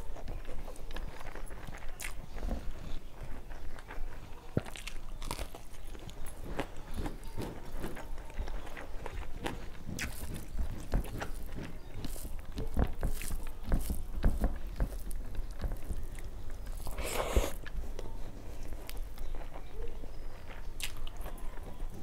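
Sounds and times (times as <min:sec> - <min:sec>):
chewing food: 0:00.0 - 0:22.0
fingers mixing rice on steel plate: 0:00.0 - 0:22.0.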